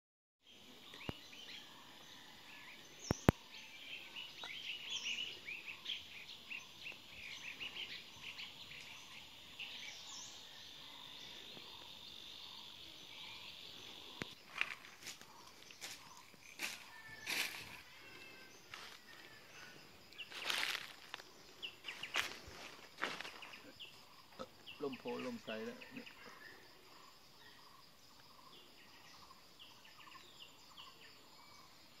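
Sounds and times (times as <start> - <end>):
birds chirping: 0.4 - 32.0
high insect buzz: 4.2 - 24.8.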